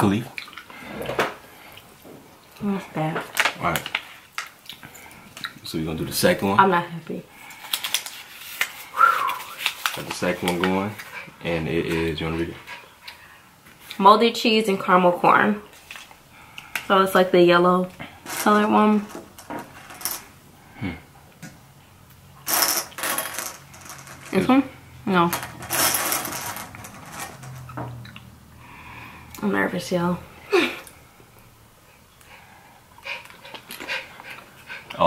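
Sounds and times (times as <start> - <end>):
people chewing: 0.1 - 2.8, 3.7 - 5.6, 7.4 - 14.0, 15.8 - 16.9, 28.0 - 29.4, 30.5 - 35.0
jelly beans rattling in a bowl: 18.2 - 20.3, 25.3 - 27.7
breathy puffs of breath: 28.6 - 29.4.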